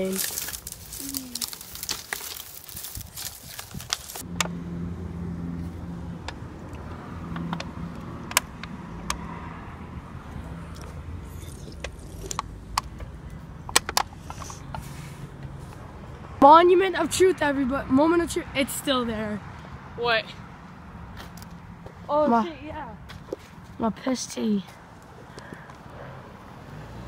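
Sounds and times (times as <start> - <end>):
twigs crackling and snapping: 0.0 - 4.6
vehicle engine humming: 0.0 - 27.0.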